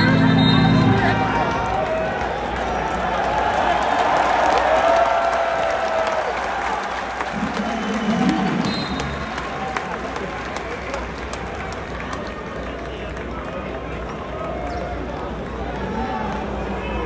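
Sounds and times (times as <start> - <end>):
crowd chatter: 0.0 - 4.2, 7.1 - 17.0
scattered clapping: 1.4 - 16.8.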